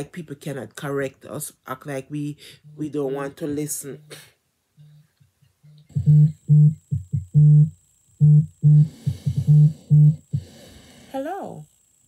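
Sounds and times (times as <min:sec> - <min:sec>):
phone buzzing on vibrate: 0:05.6 - 0:10.5.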